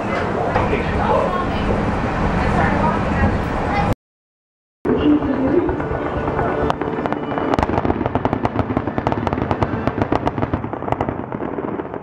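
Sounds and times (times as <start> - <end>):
fireworks popping and crackling: 5.7 - 12.0.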